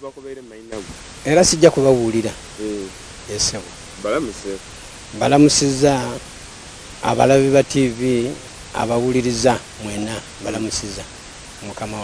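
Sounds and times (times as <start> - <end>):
person speaking: 0.0 - 6.3
background hiss: 0.0 - 12.0.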